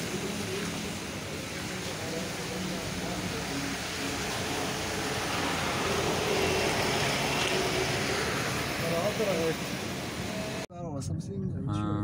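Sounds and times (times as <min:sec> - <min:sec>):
road and engine noise inside vehicle: 0:00.0 - 0:10.7.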